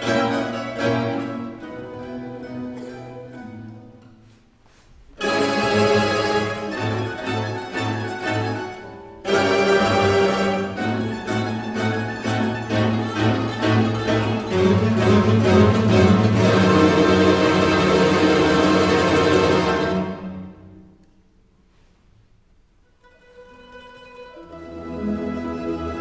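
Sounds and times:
mandolin orchestra playing: 0.0s - 21.0s, 22.9s - 26.0s.

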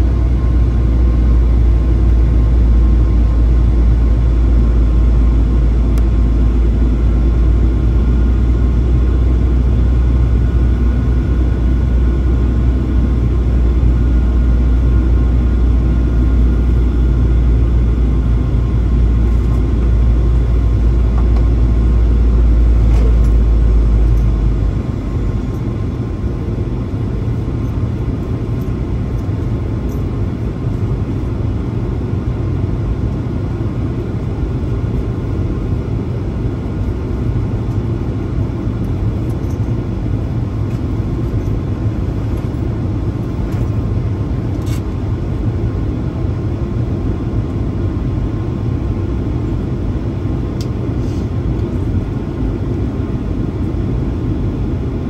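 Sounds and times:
airliner cabin engine rumble: 0.0s - 55.0s
faint steady whine: 0.0s - 55.0s.

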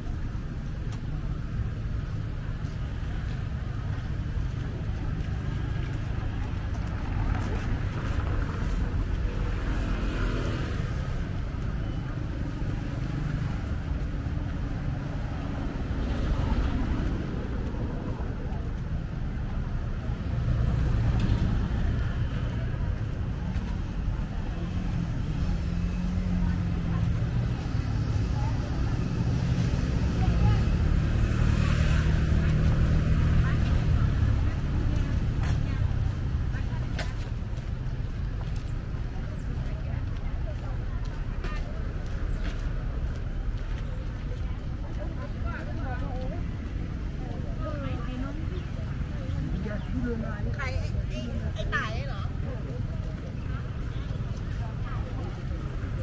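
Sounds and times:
cars and motorbikes passing: 0.0s - 56.0s
people's voices: 0.0s - 56.0s.

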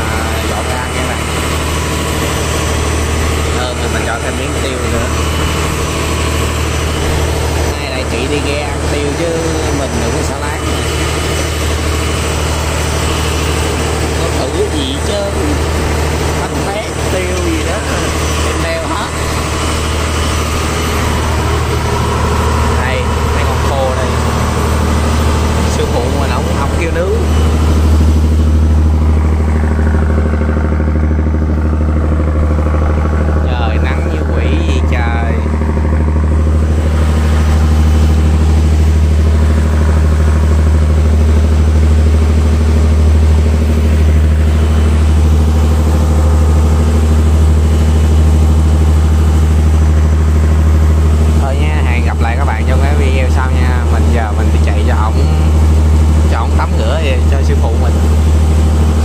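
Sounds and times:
boat engine droning: 0.0s - 59.0s.

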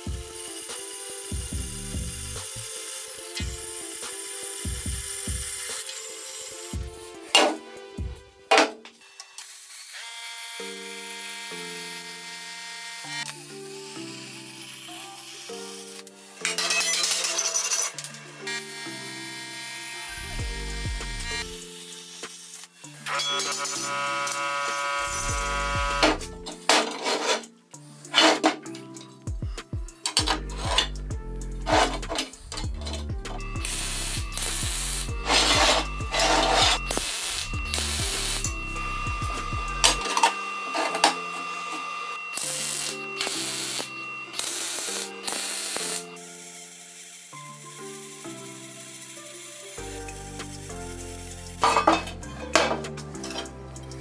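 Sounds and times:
background music: 0.0s - 54.0s
hammer striking steel: 31.7s - 46.0s.

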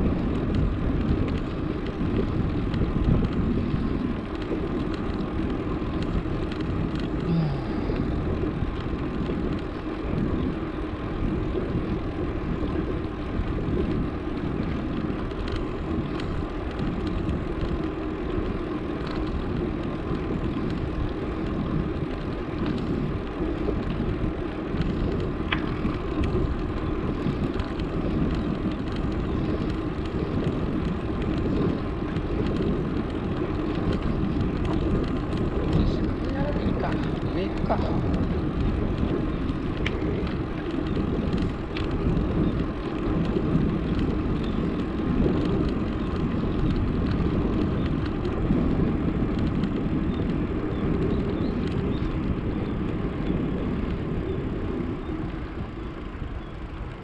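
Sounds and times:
bicycle tyres on asphalt: 0.0s - 57.0s
wind on microphone: 0.0s - 57.0s.

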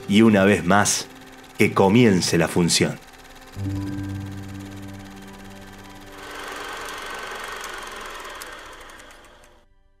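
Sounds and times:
faint music: 0.0s - 7.1s
film projector clattering: 0.0s - 9.6s.

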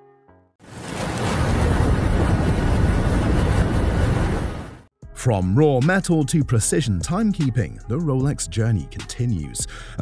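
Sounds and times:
loud rushing rumble: 0.8s - 4.9s.

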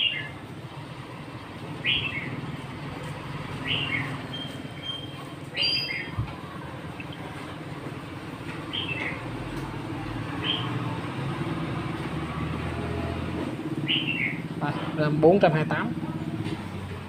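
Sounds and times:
bird chirping: 1.8s - 2.4s, 3.6s - 7.6s, 8.7s - 9.3s, 10.3s - 10.9s, 13.8s - 14.5s.

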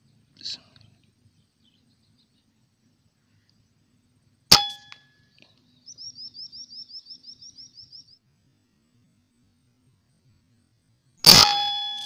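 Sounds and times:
bird chirping: 0.0s - 3.8s, 4.5s - 8.3s
metallic ring: 4.5s - 5.3s, 11.2s - 12.0s
rifle shot: 11.2s - 12.0s.

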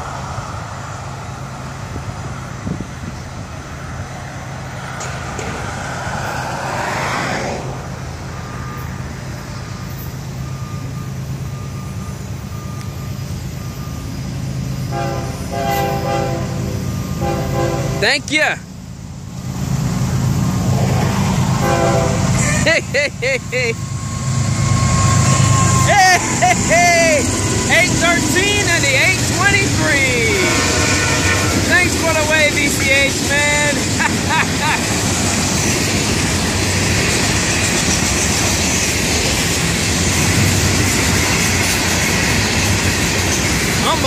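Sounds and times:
low rumble of traffic: 0.0s - 44.0s
vehicle passing close by: 4.8s - 8.0s.

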